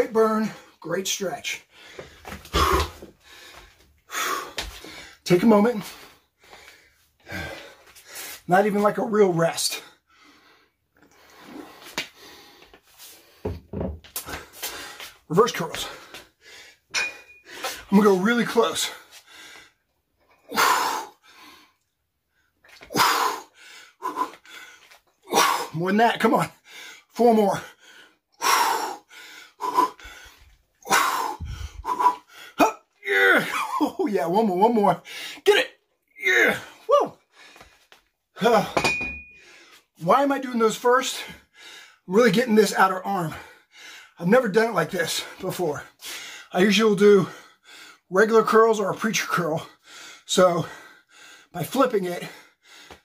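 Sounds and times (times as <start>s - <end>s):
man grunting: 2.5s - 3.0s, 30.9s - 34.2s, 35.5s - 37.2s.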